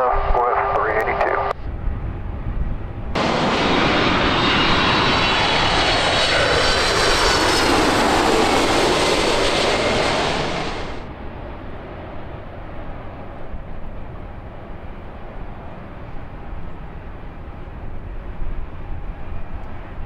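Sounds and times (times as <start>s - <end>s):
jet engine whine: 0.0s - 20.0s.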